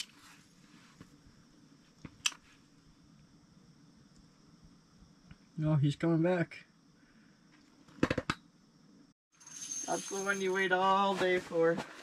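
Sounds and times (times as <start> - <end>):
faint hum and hiss: 0.0 - 9.1.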